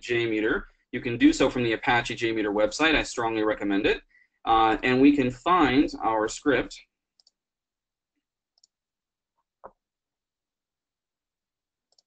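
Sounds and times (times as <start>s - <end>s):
computer mouse clicks: 7.2s - 7.4s.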